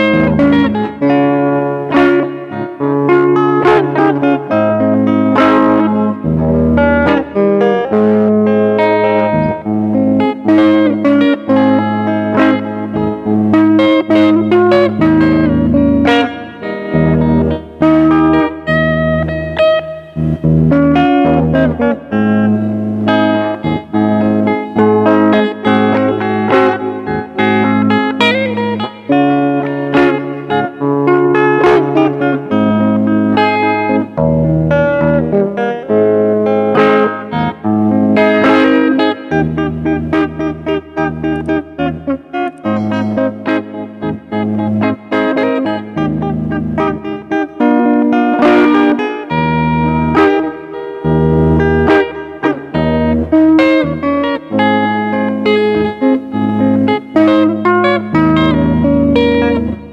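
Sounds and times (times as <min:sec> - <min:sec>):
fingerstyle electric guitar: 0:00.0 - 0:59.9.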